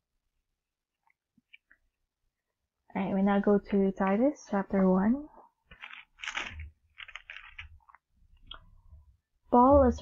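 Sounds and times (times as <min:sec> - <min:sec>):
thin pages turning: 0:05.6 - 0:08.1.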